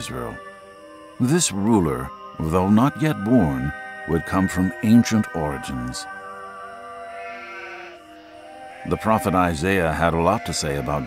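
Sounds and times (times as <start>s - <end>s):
soft background music: 0.0s - 11.0s
sheep bleating: 7.1s - 11.0s.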